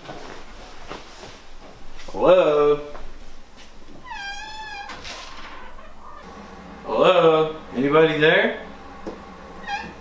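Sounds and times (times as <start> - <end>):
cat meowing: 4.0 - 6.2, 9.6 - 10.0.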